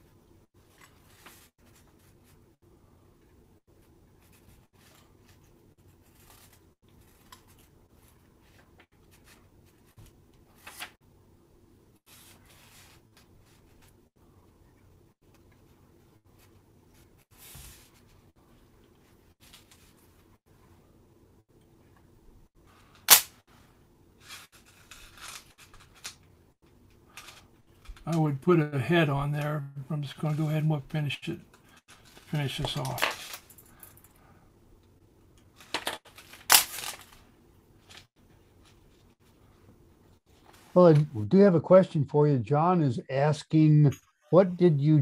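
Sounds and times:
fingers rustling thread: 3.6s - 11.0s.

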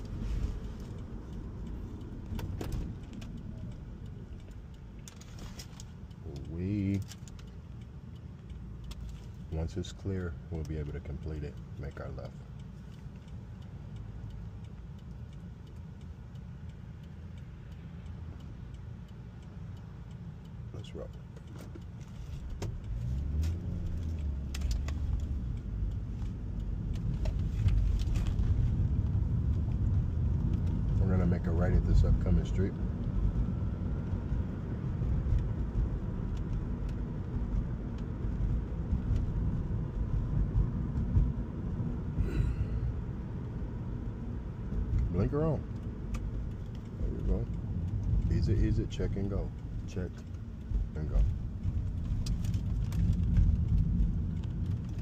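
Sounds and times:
light clicks and rattles: 0.0s - 18.8s, 20.1s - 41.8s, 42.4s - 55.0s
car road and tyre rumble: 0.0s - 55.0s.

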